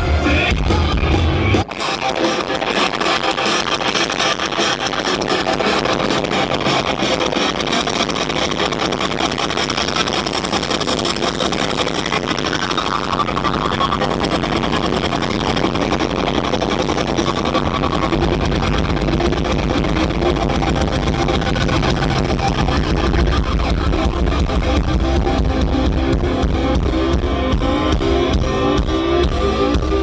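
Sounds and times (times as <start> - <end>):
live rock band: 0.0 - 30.0.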